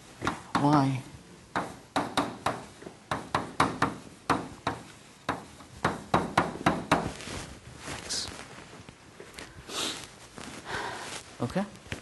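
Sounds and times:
chalk tapping on blackboard: 0.2 - 0.9, 1.5 - 7.2.

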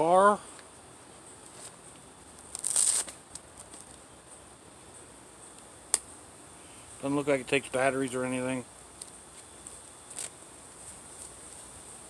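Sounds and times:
insects buzzing: 0.0 - 12.0
plush toy crinkling rustle: 1.4 - 4.0, 9.3 - 11.7.

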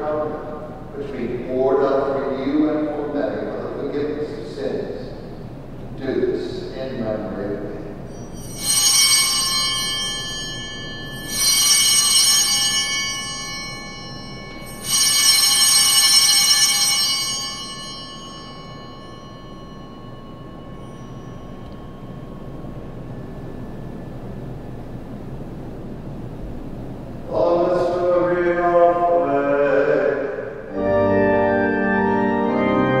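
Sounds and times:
altar bells ringing: 7.8 - 27.4.

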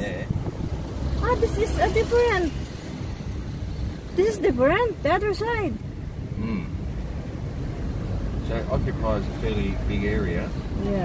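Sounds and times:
car rumble from inside cabin: 0.0 - 11.0.

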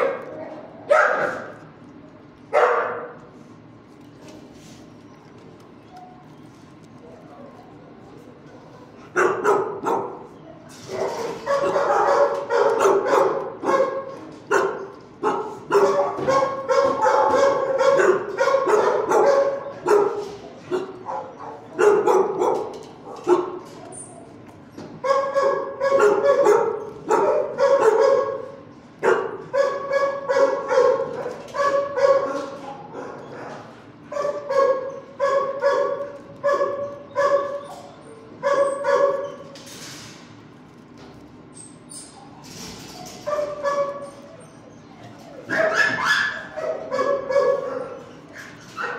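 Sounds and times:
dogs barking: 0.0 - 1.7, 2.5 - 3.3, 8.8 - 39.6, 43.0 - 48.9.

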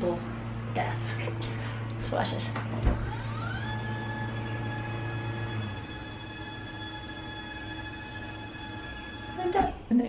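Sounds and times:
desk motor whining: 0.0 - 10.0
low hum: 0.0 - 10.0.

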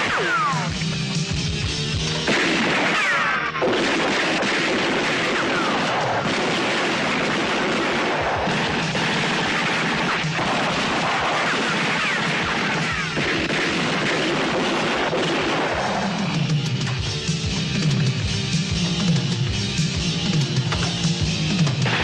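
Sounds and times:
rifle and machine-gun fire: 0.0 - 0.8, 2.0 - 22.0
film score music: 0.0 - 22.0.

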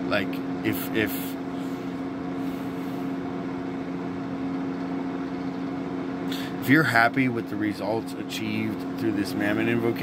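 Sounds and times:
motor humming: 0.0 - 10.0.

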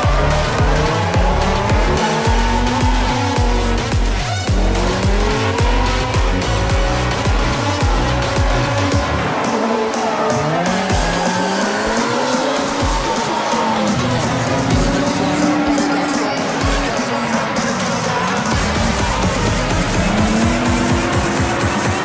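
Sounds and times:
car engines revving: 0.0 - 22.0
electronic dance music: 0.0 - 22.0.

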